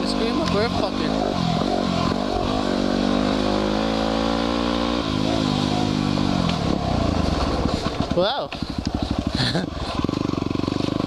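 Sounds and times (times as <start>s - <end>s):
motorcycle engine under throttle: 0.0s - 11.0s.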